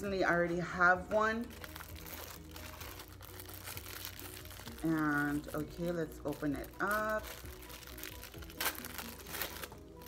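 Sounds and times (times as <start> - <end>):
plastic sleeve crinkling: 0.4 - 10.0.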